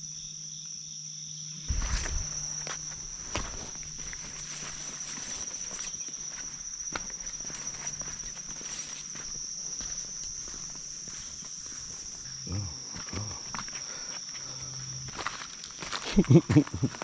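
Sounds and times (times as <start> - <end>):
high-pitched insect drone: 0.0 - 17.0
footsteps on dirt trail: 1.7 - 17.0.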